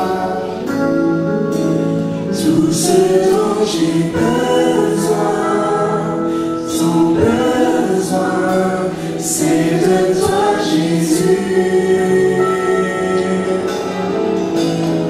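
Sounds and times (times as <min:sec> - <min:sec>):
man singing lead: 0:00.0 - 0:14.8
acoustic guitar: 0:00.0 - 0:15.0
vocal group singing in harmony: 0:00.0 - 0:15.0.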